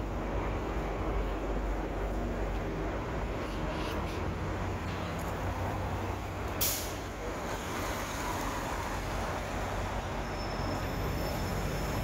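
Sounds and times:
city traffic rumble: 0:00.0 - 0:12.0
air brakes hissing: 0:06.6 - 0:07.1.

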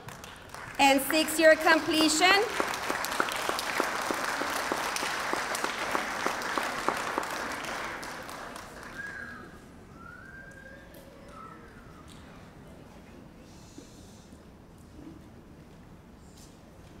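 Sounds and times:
audience applauding: 0:00.0 - 0:09.5.

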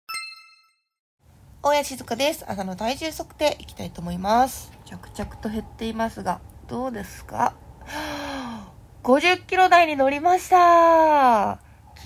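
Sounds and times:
bright bell-like ding: 0:00.1 - 0:00.8
woman speaking: 0:01.6 - 0:07.6, 0:08.6 - 0:11.6.

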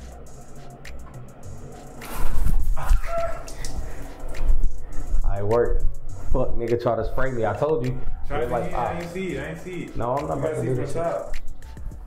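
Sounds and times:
person crying out: 0:02.8 - 0:03.6.

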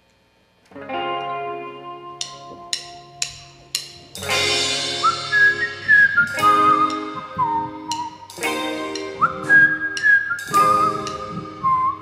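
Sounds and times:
electric guitar chords: 0:00.7 - 0:12.0
drums: 0:00.8 - 0:12.0
whistled melody: 0:04.7 - 0:12.0.

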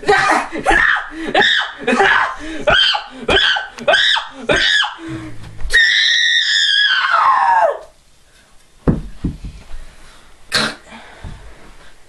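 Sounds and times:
high-pitched scream: 0:05.7 - 0:07.9
thump: 0:08.9 - 0:09.6.

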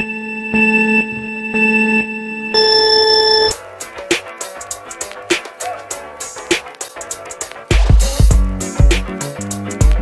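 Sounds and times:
electronic countdown beeps: 0:00.6 - 0:03.6.

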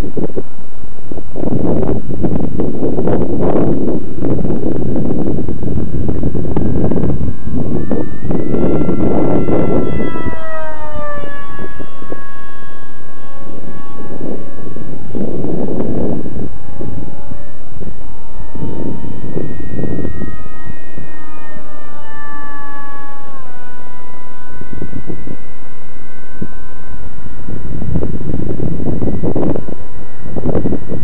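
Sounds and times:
electric motor and propeller whining: 0:00.0 - 0:31.0
wind rumble on microphone: 0:00.0 - 0:31.0.

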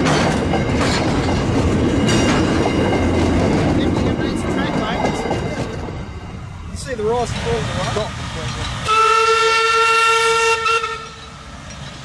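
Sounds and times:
low train rumble: 0:00.0 - 0:12.0
steam locomotive whistle: 0:08.8 - 0:11.4.

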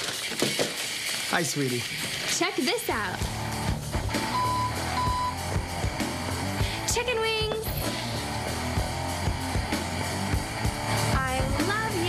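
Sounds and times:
background music: 0:02.9 - 0:12.0
reversing alarm beeps: 0:04.3 - 0:05.5.

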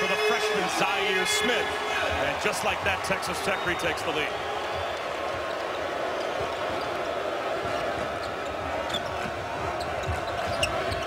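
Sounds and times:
arena crowd noise: 0:00.0 - 0:11.0
sneakers squeaking on floor: 0:07.8 - 0:11.0.

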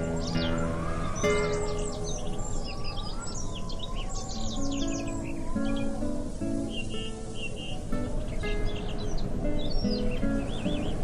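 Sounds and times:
guitar music: 0:00.0 - 0:03.5, 0:04.3 - 0:11.0
high chirping bird calls: 0:00.0 - 0:11.0.

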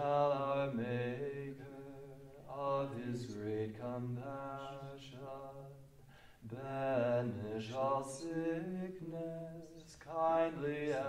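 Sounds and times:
group singing a slow hymn: 0:00.0 - 0:05.8, 0:06.4 - 0:11.0.

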